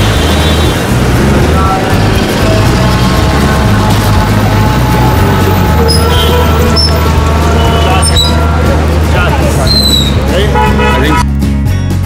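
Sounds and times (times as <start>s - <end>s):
running traffic: 0.0s - 11.7s
crowd voices: 0.8s - 11.3s.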